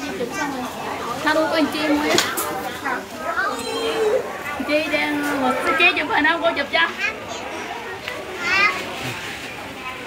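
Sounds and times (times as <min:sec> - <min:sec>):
women chattering: 0:00.0 - 0:10.0
young child's voice: 0:07.0 - 0:09.0.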